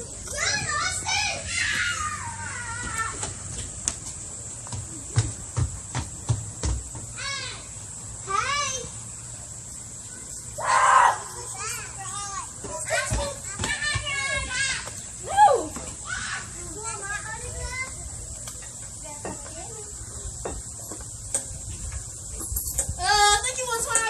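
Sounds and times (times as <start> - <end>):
children shouting and chattering: 0.0 - 3.5, 7.1 - 22.2.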